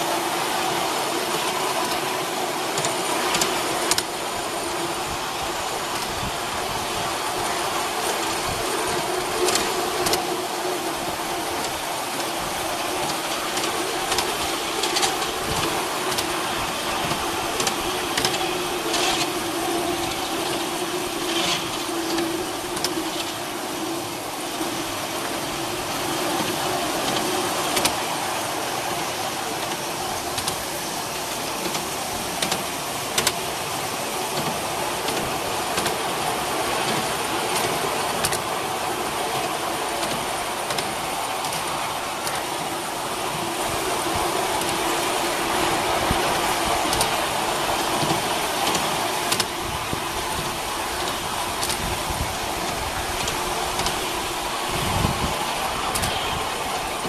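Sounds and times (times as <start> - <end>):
miniature train running: 0.0 - 57.0
wheels clicking on rails: 0.0 - 57.0.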